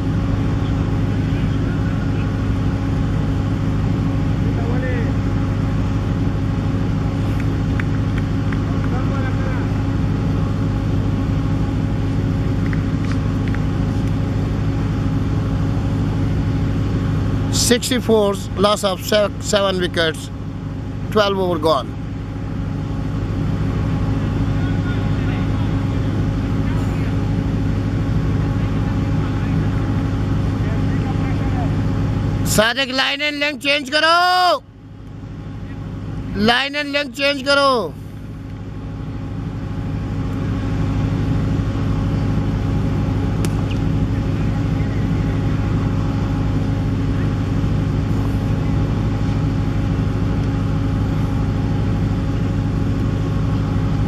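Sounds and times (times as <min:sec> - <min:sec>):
machine engine humming: 0:00.0 - 0:54.0
faint voices: 0:24.2 - 0:27.5.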